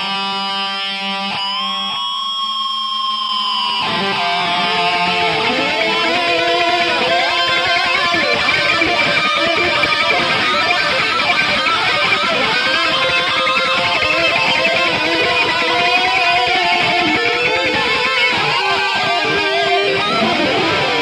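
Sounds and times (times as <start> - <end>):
electric guitar solo with bends: 0.0 - 21.0.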